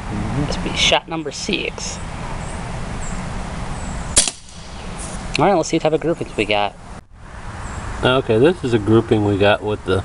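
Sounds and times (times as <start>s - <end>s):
air pistol shot: 4.2s - 5.3s.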